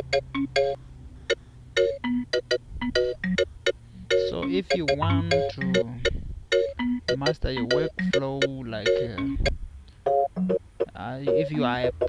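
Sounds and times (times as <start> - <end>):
vibraphone melody: 0.0 - 9.5, 10.1 - 12.0
low steady tone: 0.0 - 12.0.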